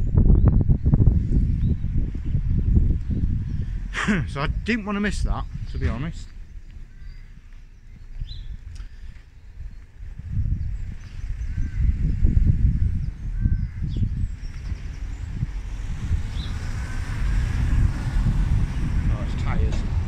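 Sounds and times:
wind buffeting microphone: 0.0 - 20.0
faint bird chirps: 5.6 - 10.0.

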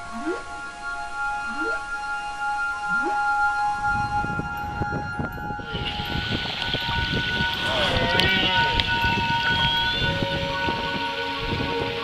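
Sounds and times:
whale song moans: 0.0 - 6.9
crackling noise: 0.0 - 12.0
steady held tones: 0.0 - 12.0.

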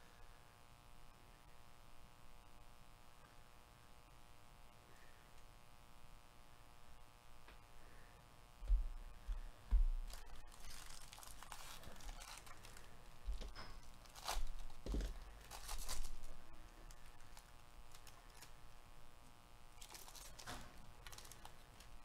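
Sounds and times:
foil wrapper tearing and crinkling: 10.1 - 18.6, 19.7 - 22.0.

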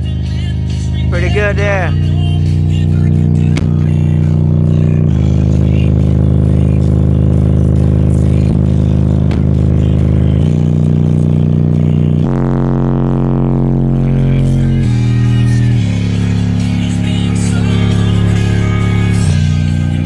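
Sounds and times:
loud bass-heavy music: 0.0 - 20.0.

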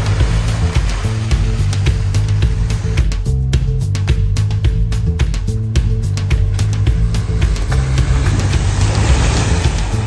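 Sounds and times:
water and mud spraying from tyres: 0.0 - 3.4, 6.2 - 10.0
vehicle engine running: 0.0 - 10.0.

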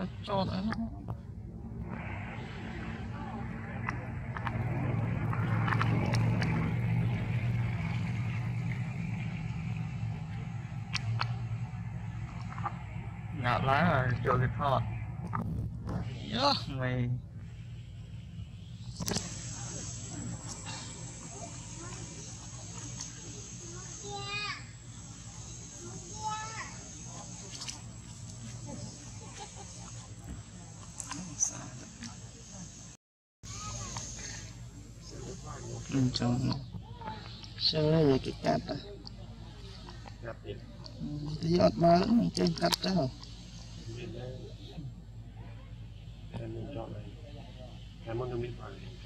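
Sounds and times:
motor humming: 0.0 - 16.6, 17.2 - 49.0.

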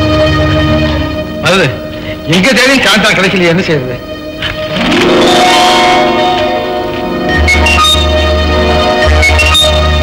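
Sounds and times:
bell-like film score chord: 0.0 - 10.0.

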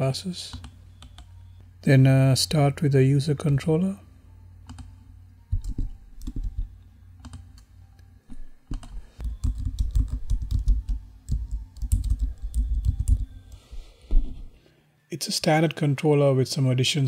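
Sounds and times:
computer keyboard typing: 0.5 - 1.3, 4.7 - 4.9, 5.5 - 7.7, 8.7 - 13.6.

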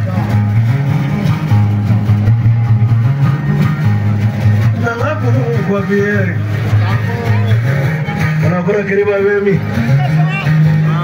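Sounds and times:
loud repeating bass line: 0.0 - 11.0
plucked guitar: 0.0 - 11.0.

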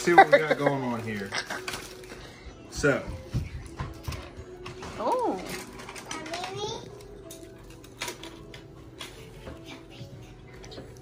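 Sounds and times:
foil wrapper crinkling: 0.0 - 2.5.

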